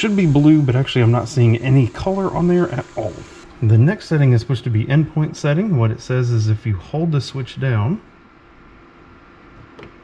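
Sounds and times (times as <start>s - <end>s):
room hiss and hum: 0.0s - 10.0s.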